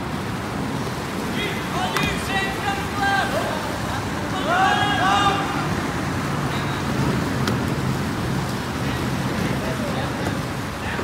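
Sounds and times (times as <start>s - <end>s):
steady rushing background noise: 0.0s - 11.0s
people shouting calls: 1.3s - 6.9s.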